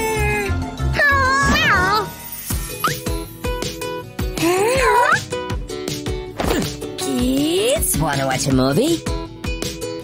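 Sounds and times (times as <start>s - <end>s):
children's music with pulsing beat: 1.7s - 10.0s.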